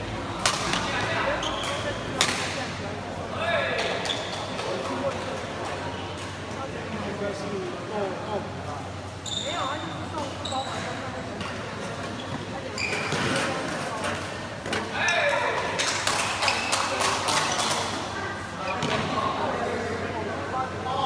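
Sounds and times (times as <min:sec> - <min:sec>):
crowd chatter: 0:00.0 - 0:21.0
shoes squeaking on court floor: 0:01.0 - 0:02.1, 0:03.9 - 0:04.9, 0:09.1 - 0:13.9.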